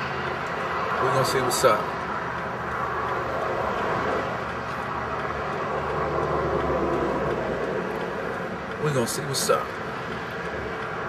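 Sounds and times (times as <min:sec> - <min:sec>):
vehicle passing with low rumble: 0:00.0 - 0:08.8
freeway traffic road noise: 0:00.0 - 0:11.0.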